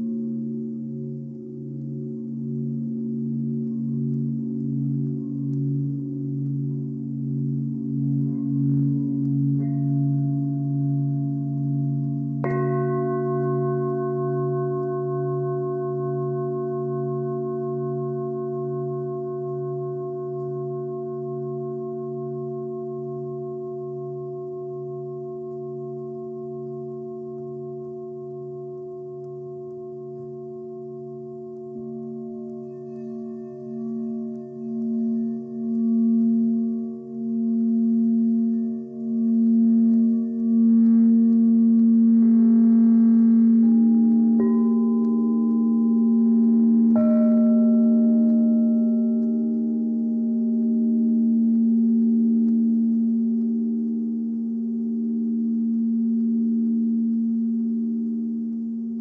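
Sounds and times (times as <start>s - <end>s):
deep singing bowl tone: 0.0s - 59.0s
singing bowls ringing: 0.0s - 59.0s
singing bowls struck: 0.0s - 59.0s.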